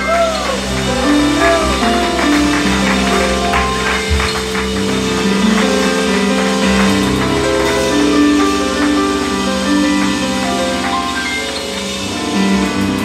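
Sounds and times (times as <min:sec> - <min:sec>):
keyboard chords: 0:00.0 - 0:13.0.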